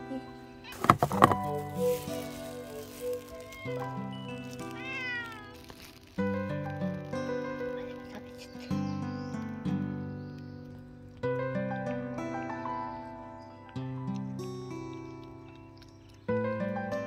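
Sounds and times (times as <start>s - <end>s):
background music of held notes: 0.0s - 17.0s
cat meowing: 0.5s - 6.0s.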